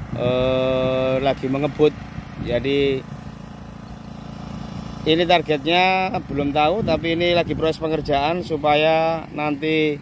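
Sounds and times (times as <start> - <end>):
engine running with low hum: 0.0 - 10.0.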